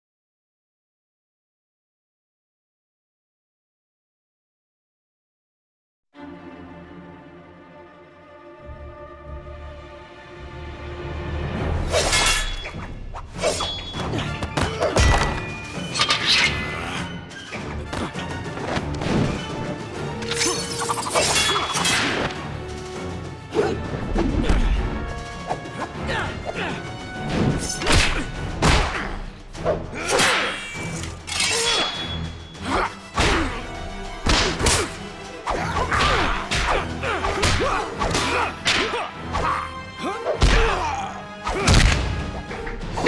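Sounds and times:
orchestral music: 0:06.1 - 0:43.0
scythe swishing through air: 0:11.8 - 0:13.8.

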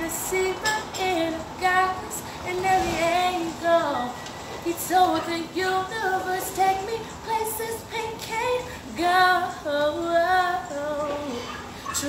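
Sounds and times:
woman singing wordless line: 0:00.0 - 0:12.0.

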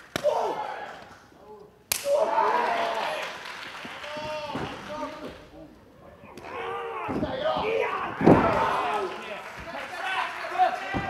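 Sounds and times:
people shouting: 0:00.2 - 0:03.3, 0:06.1 - 0:09.4
bodies slamming onto wrestling ring: 0:07.0 - 0:08.9.

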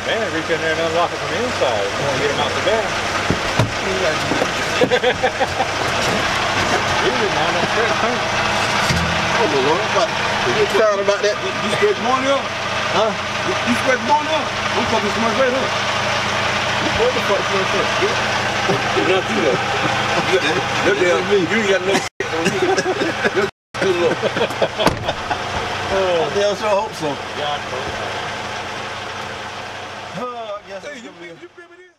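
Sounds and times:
diesel truck engine idling: 0:00.0 - 0:31.9
voices talking: 0:00.0 - 0:31.9.

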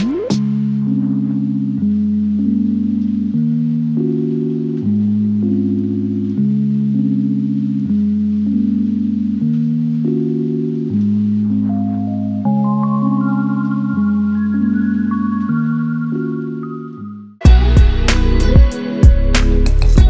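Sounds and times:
chime-like chords: 0:11.4 - 0:17.3.

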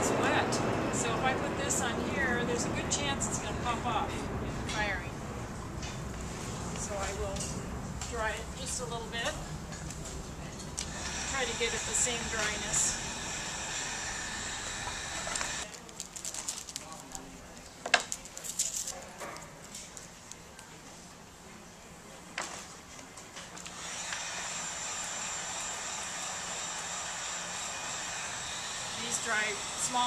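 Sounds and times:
heat gun blowing: 0:10.8 - 0:15.6, 0:23.7 - 0:30.0.

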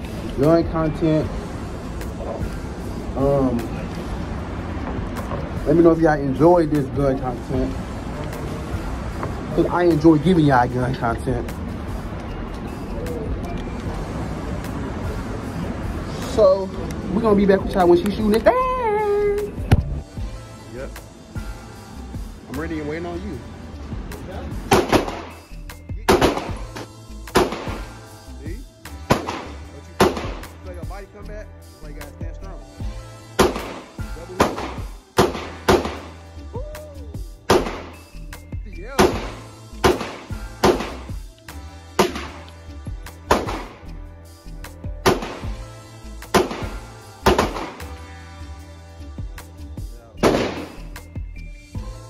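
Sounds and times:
background music: 0:00.0 - 0:52.0
single gunshots: 0:24.7 - 0:25.3, 0:26.1 - 0:26.6, 0:27.3 - 0:27.9, 0:29.1 - 0:30.4, 0:33.4 - 0:36.1, 0:37.5 - 0:38.0, 0:39.0 - 0:41.0, 0:42.0 - 0:42.4, 0:43.3 - 0:43.8, 0:45.0 - 0:45.5, 0:46.3 - 0:47.8, 0:50.2 - 0:50.8.

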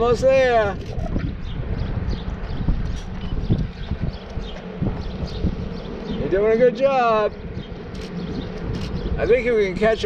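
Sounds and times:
wind rumble on microphone: 0:00.0 - 0:10.0
running footsteps on asphalt: 0:01.0 - 0:06.3.

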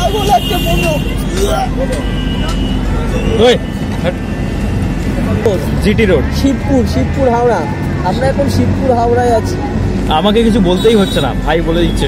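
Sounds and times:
bus engine rumble: 0:00.0 - 0:11.9
voices: 0:00.0 - 0:12.0.

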